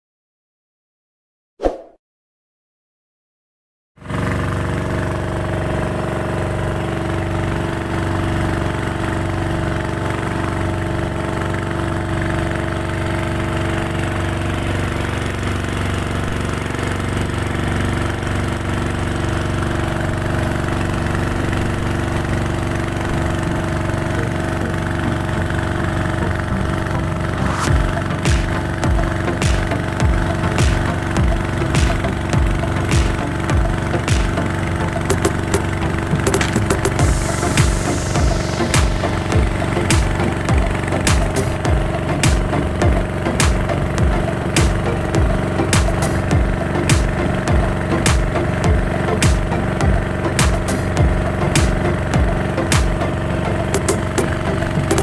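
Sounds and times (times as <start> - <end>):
boat engine running: 4.0 - 55.0
sharp regular thumps: 27.4 - 34.4, 36.1 - 53.0.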